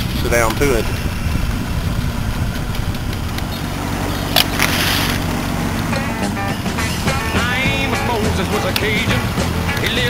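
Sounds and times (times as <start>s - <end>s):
boat motor droning: 0.0s - 10.0s
short hiss: 4.6s - 5.2s.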